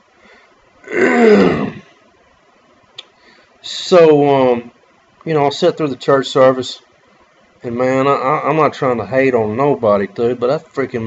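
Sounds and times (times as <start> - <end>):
man clearing his throat: 0.8 - 1.9.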